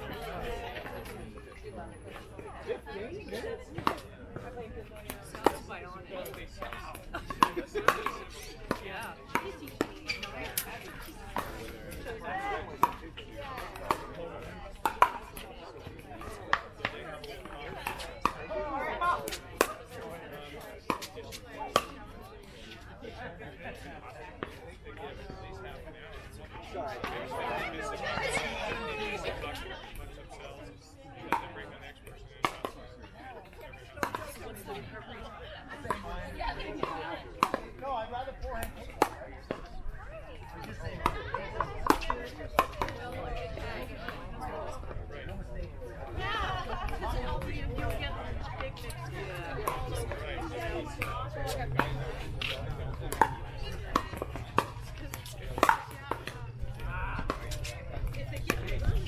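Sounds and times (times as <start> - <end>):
background voices chatting: 0.0 - 59.0.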